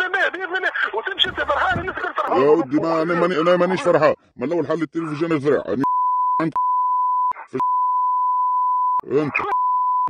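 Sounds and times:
man's voice fragments: 0.0s - 6.6s
censor bleep tone: 5.8s - 10.0s.

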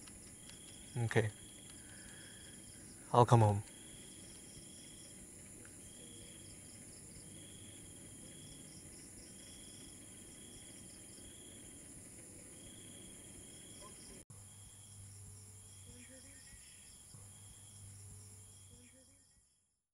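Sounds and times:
crickets trilling: 0.0s - 19.4s
high-pitched insect drone: 0.3s - 19.5s.

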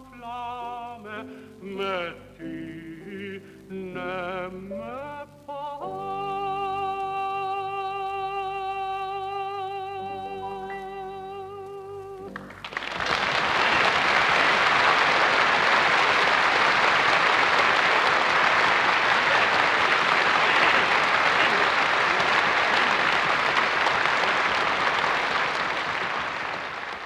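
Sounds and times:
audience applauding: 12.3s - 27.0s.

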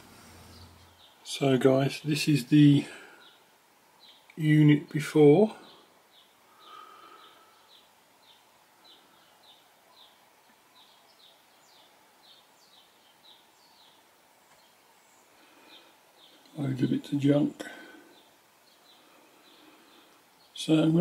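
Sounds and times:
faint bird chirping: 0.0s - 21.0s.

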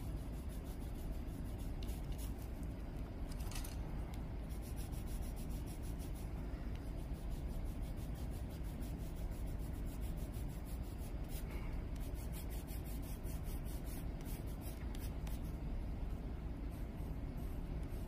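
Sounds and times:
colored pencil scratching on paper: 0.0s - 2.6s, 4.4s - 15.6s, 16.6s - 18.0s.

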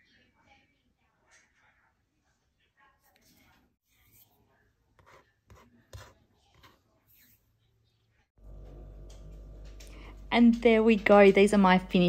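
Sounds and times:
low electrical hum: 8.4s - 12.0s.

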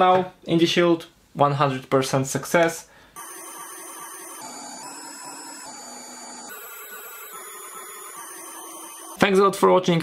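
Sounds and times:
stepper motor whine: 3.2s - 9.2s.

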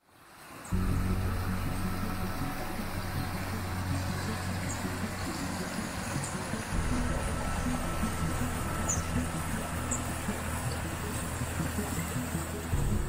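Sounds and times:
stream running over rocks: 0.0s - 13.0s
ambient music drone: 0.6s - 13.0s.

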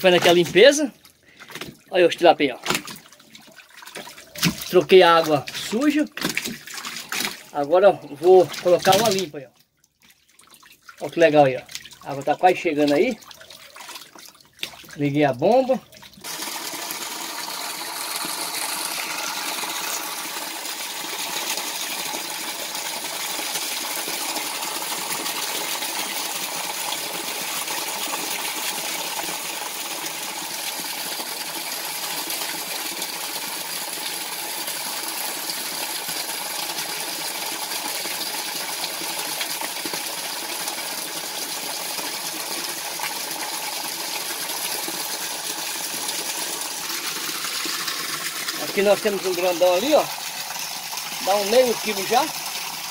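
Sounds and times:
water jet splashing into tank: 0.0s - 9.4s, 10.1s - 52.9s.

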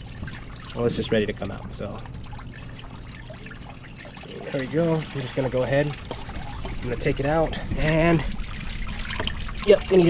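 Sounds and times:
liquid trickling into pan: 0.0s - 10.0s.

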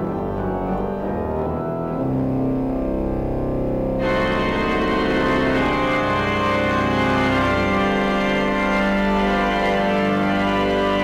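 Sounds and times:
church organ chords: 0.0s - 11.0s.

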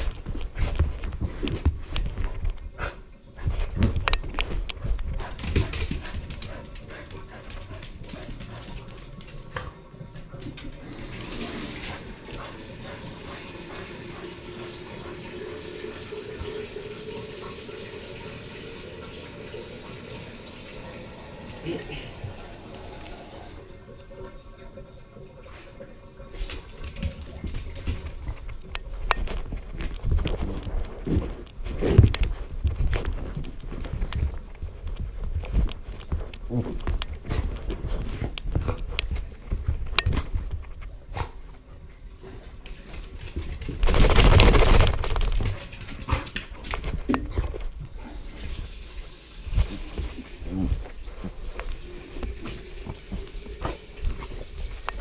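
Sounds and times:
running water hiss: 9.4s - 28.1s, 47.9s - 55.0s.

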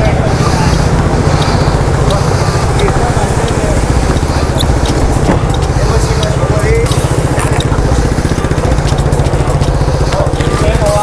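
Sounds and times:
scooter engine idling: 0.0s - 11.0s.

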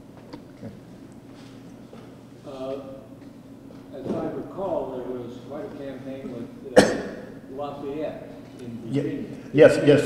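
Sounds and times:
man coughing: 6.7s - 7.4s.

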